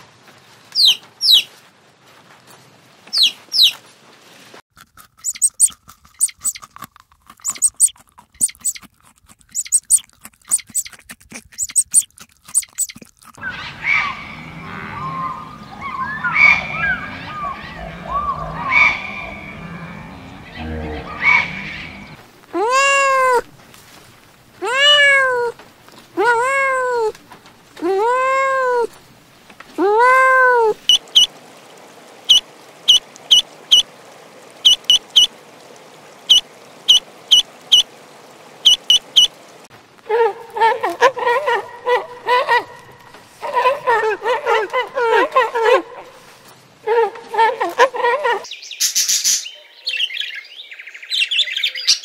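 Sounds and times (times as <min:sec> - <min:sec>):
jumbled indistinct sound: 0:05.2 - 0:06.7, 0:07.3 - 0:08.9, 0:09.5 - 0:23.4
kittens meowing: 0:24.6 - 0:25.6.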